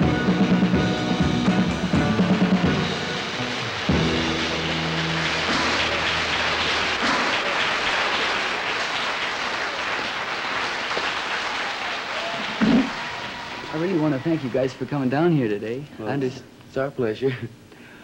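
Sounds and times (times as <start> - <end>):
pop-rock band playing: 0.0 - 7.5
steady noisy hiss: 0.0 - 18.0.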